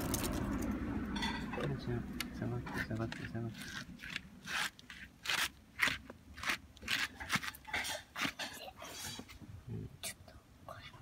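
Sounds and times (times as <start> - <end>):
faint whispering voice: 9.7 - 11.0.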